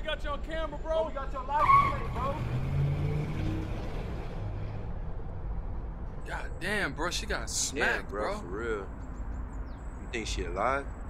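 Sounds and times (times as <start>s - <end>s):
car tyres squealing: 1.5s - 4.2s.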